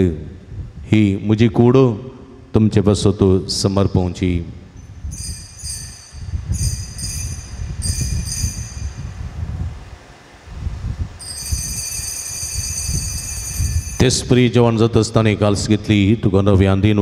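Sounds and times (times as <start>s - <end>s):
altar bells ringing: 5.1s - 9.1s, 11.2s - 14.4s.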